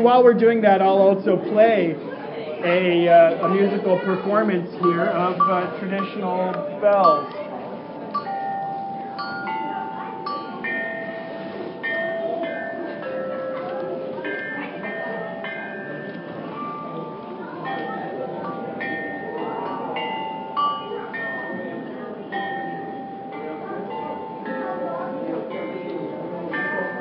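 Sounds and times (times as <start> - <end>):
bronze bells struck with mallets: 4.8 - 27.0.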